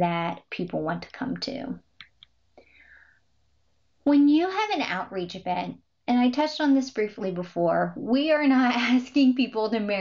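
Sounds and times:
soft breath: 2.6 - 3.4.

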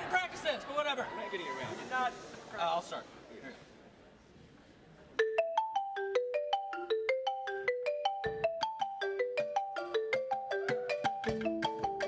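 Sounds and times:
marimba melody: 5.1 - 12.0.

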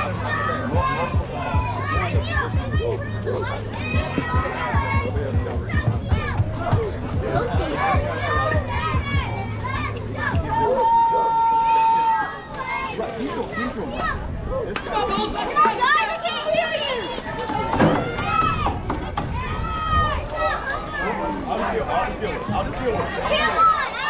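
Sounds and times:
children and adults shouting: 0.0 - 24.0.

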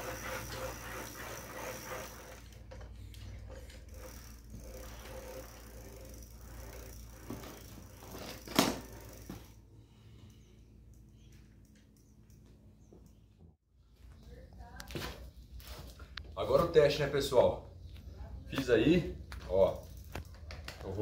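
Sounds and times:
trike wheel and pedals turning: 0.0 - 13.2, 18.0 - 21.0.

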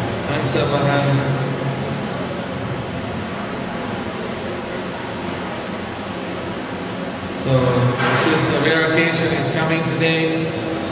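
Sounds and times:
steady background hiss: 0.0 - 10.9.

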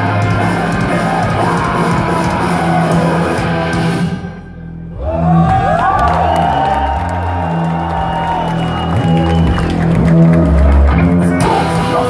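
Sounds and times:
distorted electric guitars: 0.0 - 4.8, 5.5 - 12.0
bass: 0.0 - 12.0
drums: 0.0 - 12.0.

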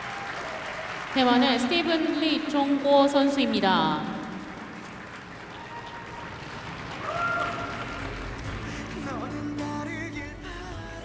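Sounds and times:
crowd applause: 0.0 - 2.9, 4.1 - 9.3
low bass: 8.1 - 11.0
music with long held notes: 8.1 - 11.0.

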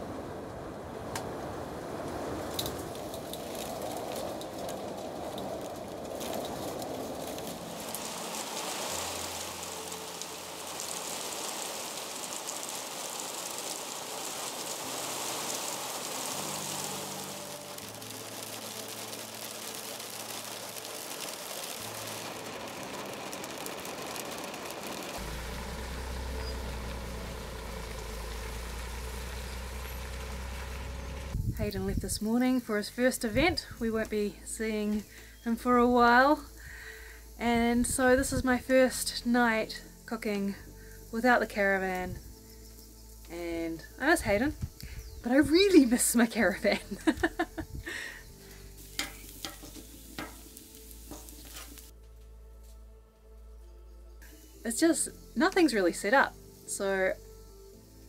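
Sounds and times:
rain and hail on plastic roof: 0.0 - 32.2, 43.3 - 52.0
deep low rumble: 21.9 - 32.4.

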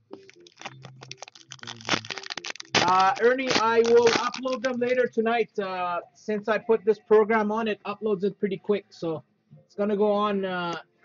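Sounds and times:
foil wrapper crinkling and tearing: 0.1 - 5.0.

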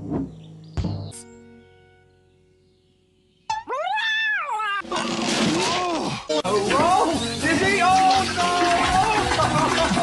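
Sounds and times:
cartoon cat yowling meow: 3.7 - 4.8.

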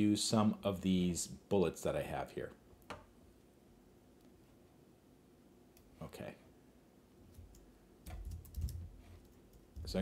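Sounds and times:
man speaking: 0.0 - 2.6, 6.0 - 6.5, 9.8 - 10.0
computer keyboard clicks: 7.4 - 10.0.

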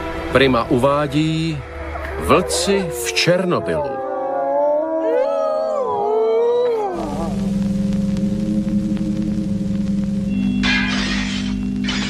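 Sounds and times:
wolves howling: 1.7 - 7.5.

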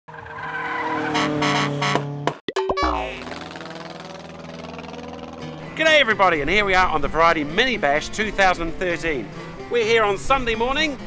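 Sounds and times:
synthesized tone: 2.5 - 4.4
glitchy stutter: 2.7 - 5.0.

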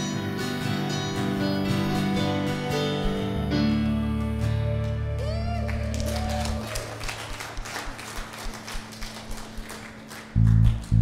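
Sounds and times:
repeated bass guitar notes: 0.0 - 6.6, 10.3 - 11.0
congregation clapping: 4.4 - 11.0.

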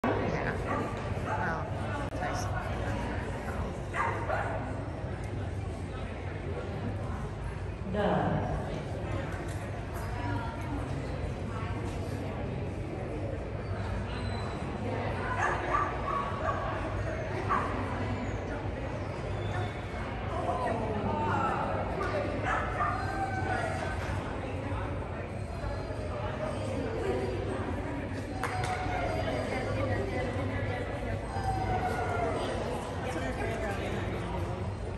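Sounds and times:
spectators chattering: 0.0 - 34.9.

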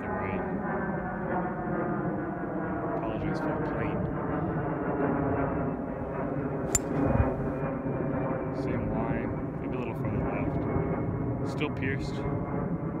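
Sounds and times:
wind noise on microphone: 3.8 - 11.4
golf club striking ball: 6.7 - 7.5.

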